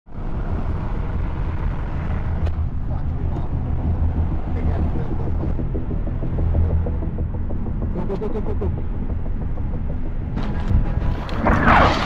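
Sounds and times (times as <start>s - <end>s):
car engine and road rumble: 0.1s - 12.0s.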